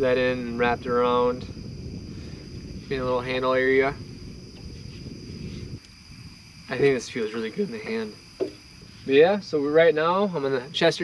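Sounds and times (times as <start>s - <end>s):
low rumble: 0.0s - 8.1s
crickets trilling: 0.0s - 11.0s.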